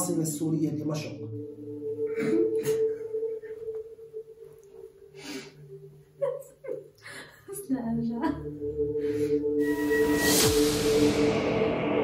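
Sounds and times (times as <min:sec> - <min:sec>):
steady background tone: 0:00.0 - 0:06.7
woman's stifled laughter: 0:06.2 - 0:07.4.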